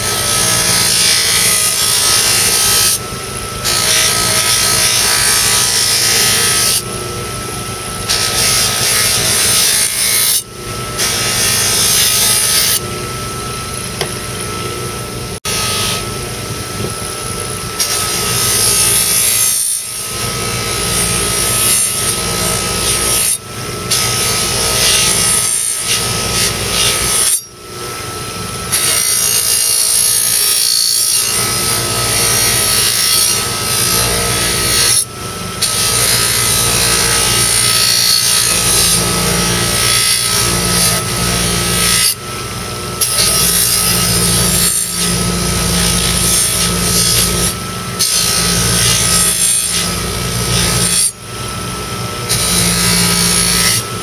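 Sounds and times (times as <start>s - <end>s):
bench buffer motor whine: 0.0s - 54.0s.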